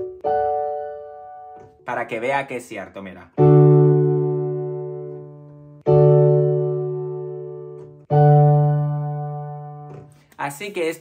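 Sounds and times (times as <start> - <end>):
digital piano chords: 0.0 - 11.0.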